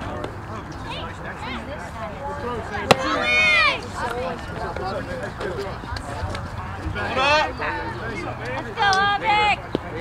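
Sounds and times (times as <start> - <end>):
children chattering: 0.7 - 10.0
baseball impact smack: 2.8 - 3.2.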